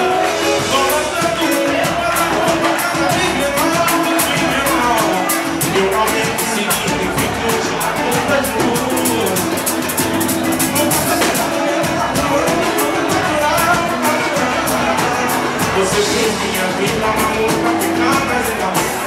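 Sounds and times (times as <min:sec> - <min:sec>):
cavaquinho: 0:00.0 - 0:19.0
electric bass: 0:00.0 - 0:19.0
man singing into a microphone: 0:00.0 - 0:19.0
percussion: 0:00.0 - 0:19.0.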